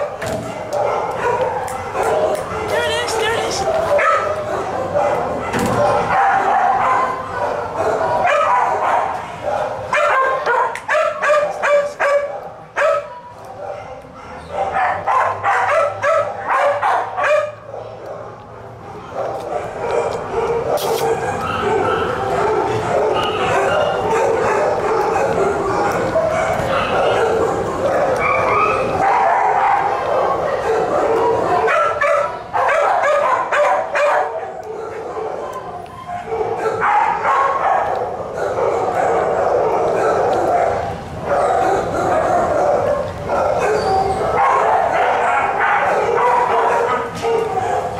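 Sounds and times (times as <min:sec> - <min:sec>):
dogs barking and yipping: 0:00.0 - 0:47.9.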